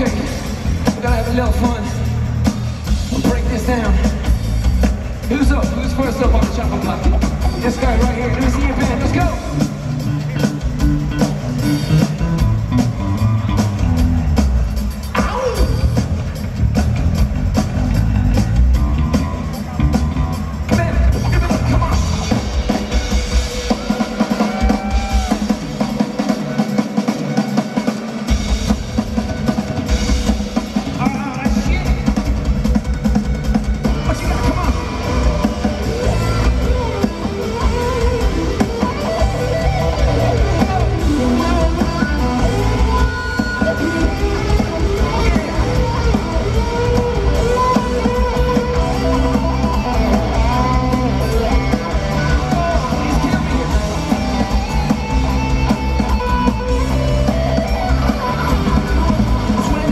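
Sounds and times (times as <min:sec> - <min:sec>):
drum kit steady beat: 0:00.0 - 0:59.9
electric guitar: 0:00.0 - 0:59.9
live rock band playing: 0:00.0 - 0:59.9.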